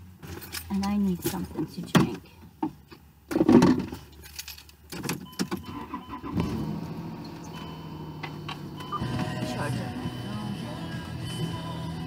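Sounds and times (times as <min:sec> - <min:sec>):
car engine starting and idling: 0:03.8 - 0:12.0
car keys jangling: 0:04.0 - 0:05.7
car radio music: 0:05.2 - 0:12.0.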